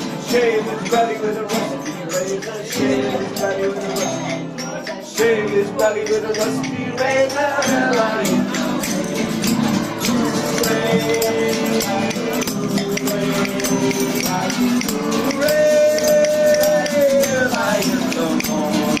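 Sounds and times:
acoustic guitars strummed: 0.0s - 19.0s
man singing: 0.0s - 19.0s
shaker rattling: 0.0s - 19.0s.

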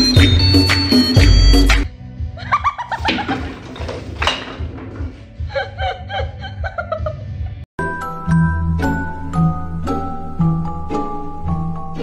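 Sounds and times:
person laughing: 2.4s - 3.6s, 5.4s - 7.6s.

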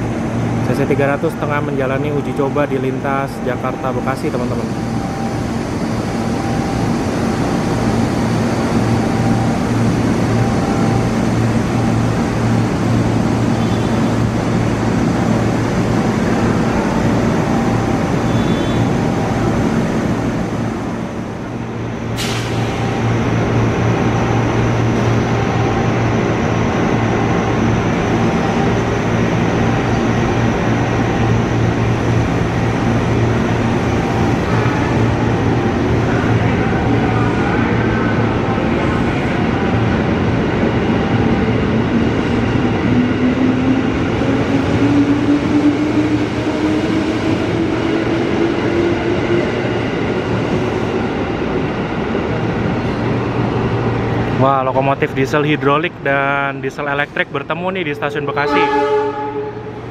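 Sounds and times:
diesel locomotive engine humming: 0.0s - 59.9s.

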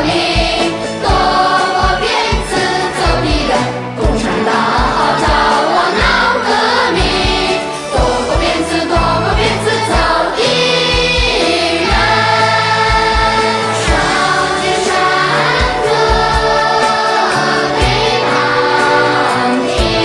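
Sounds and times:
mixed choir singing: 0.0s - 20.0s.

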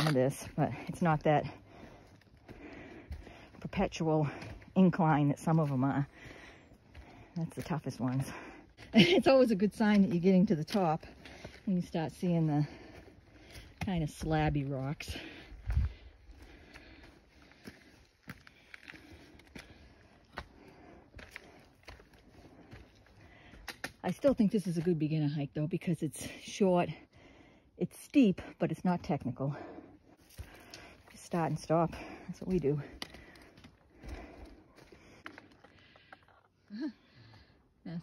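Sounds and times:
footsteps on rocky trail: 0.0s - 25.5s, 28.4s - 36.6s
boots on stone: 12.6s - 24.4s.

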